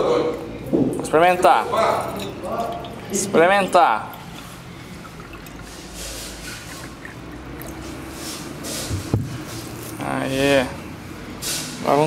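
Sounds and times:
water trickling into metal cup: 1.6 - 8.8.

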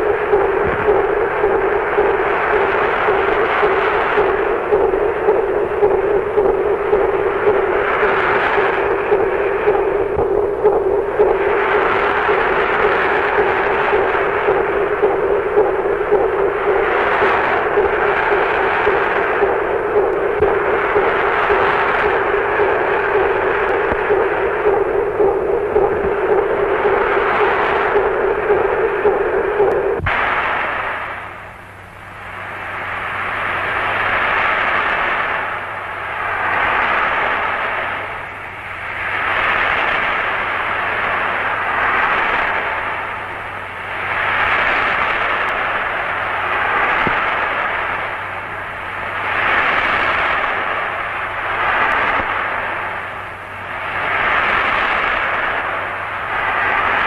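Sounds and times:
rushing noise: 0.0 - 57.0
steady hum: 0.0 - 57.0.

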